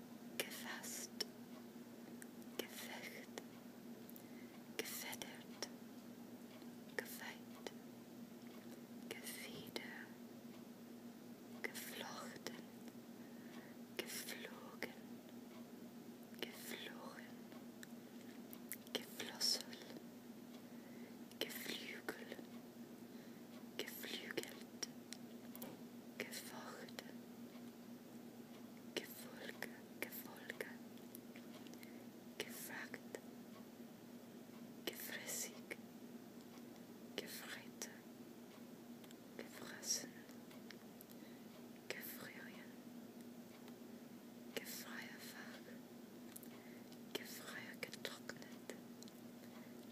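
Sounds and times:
low steady hum: 0.0 - 49.9
person whispering: 0.4 - 1.3, 2.6 - 3.4, 4.8 - 5.7, 7.0 - 7.8, 9.1 - 10.2, 11.6 - 12.7, 14.0 - 15.0, 16.4 - 17.4, 18.8 - 20.0, 21.4 - 22.5, 23.8 - 24.9, 26.2 - 27.2, 29.0 - 30.8, 32.4 - 33.2, 34.9 - 35.8, 37.2 - 38.0, 39.4 - 40.3, 41.9 - 42.8, 44.6 - 45.8, 47.1 - 48.8.

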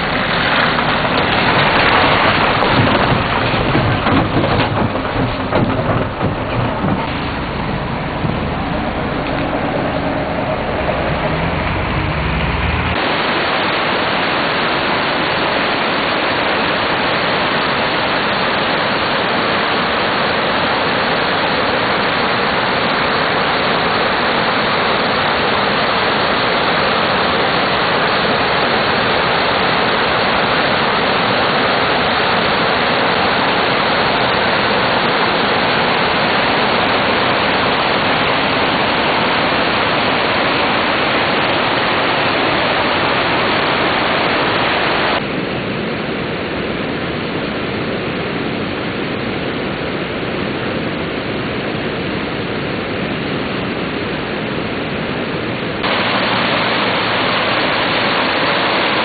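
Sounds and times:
flooded river rushing: 0.0 - 59.0.

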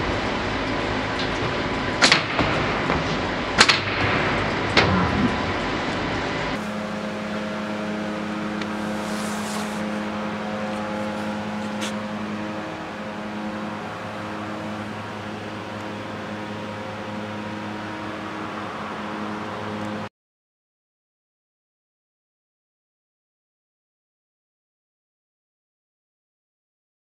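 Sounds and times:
industrial machinery hum: 0.0 - 20.1.

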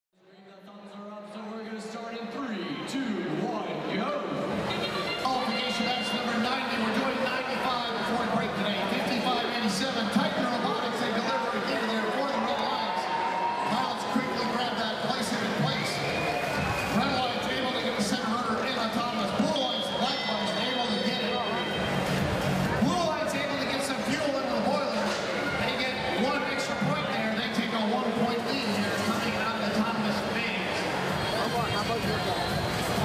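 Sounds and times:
crowd chatter and shouting: 0.2 - 33.0
music from sound system: 15.0 - 33.0.

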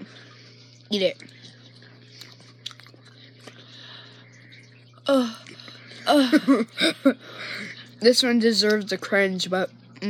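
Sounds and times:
low steady hum: 0.0 - 10.0
chewing gummy candy: 0.7 - 5.9
wet mouth clicks: 2.1 - 3.7.

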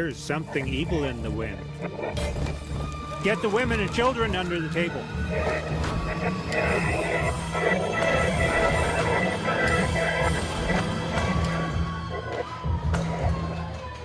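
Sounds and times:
dramatic music: 0.0 - 14.0.

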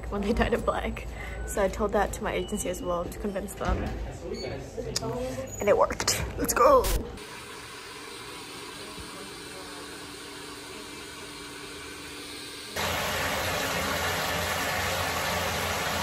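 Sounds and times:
hair dryer blowing: 12.7 - 16.0.

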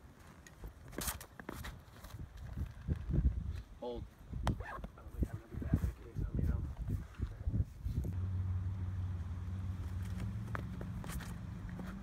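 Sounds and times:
wind buffeting microphone: 2.1 - 8.3.

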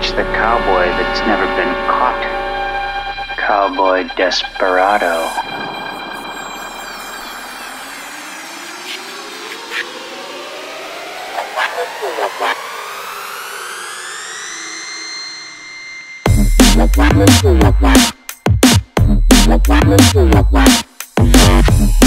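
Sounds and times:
synth riser climbing in pitch: 4.4 - 15.9
wash of noise: 5.1 - 10.2.

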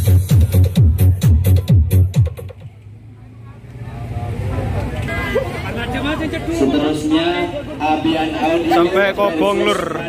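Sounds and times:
electronic dance music: 0.0 - 2.7
crowd chatter: 0.0 - 10.0.

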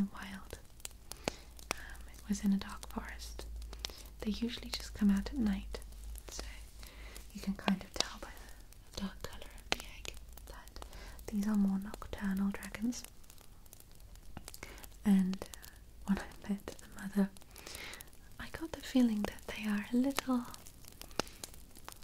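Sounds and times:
soft whispering: 0.0 - 13.5, 14.4 - 21.6.

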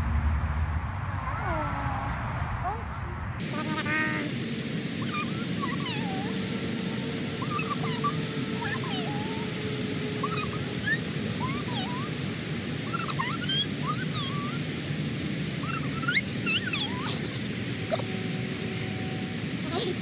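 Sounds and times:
dog whining: 7.4 - 9.6, 12.9 - 14.6, 15.6 - 18.9.

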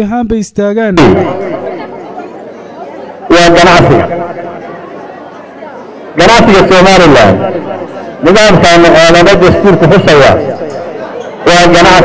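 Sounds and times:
man's voice through a microphone: 0.0 - 1.7, 3.2 - 4.6, 6.1 - 12.0
faint chatter of people: 1.0 - 12.0.

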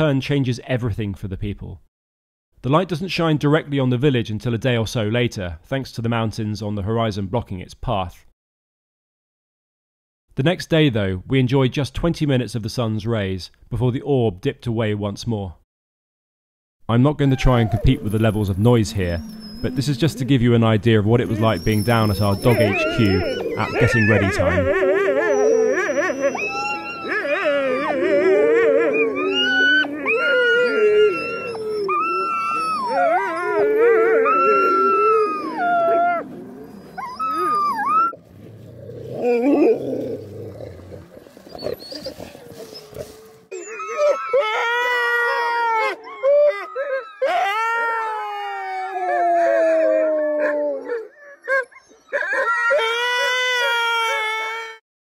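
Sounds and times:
dogs howling together: 17.4 - 54.8
single dog howling: 21.3 - 38.2, 38.9 - 54.8.

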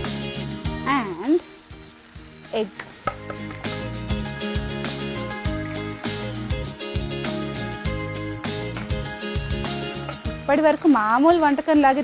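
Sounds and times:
background music: 0.0 - 12.0
vegetables sizzling in a pan: 0.0 - 12.0.

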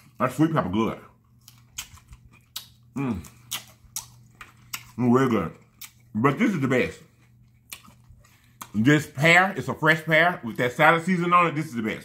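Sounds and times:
crisp crunches of chewing: 1.2 - 8.9
wet mouth clicks: 1.7 - 4.9.

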